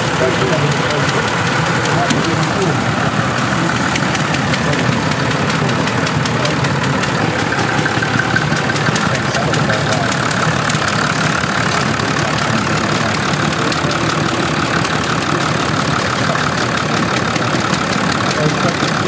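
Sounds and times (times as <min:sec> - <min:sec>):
tractor engine idling: 0:00.0 - 0:19.0.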